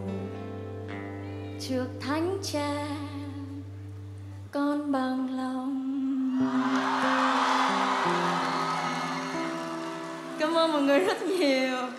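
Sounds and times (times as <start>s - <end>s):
audience cheering and applauding: 6.4s - 11.9s
live band playing: 6.4s - 11.9s.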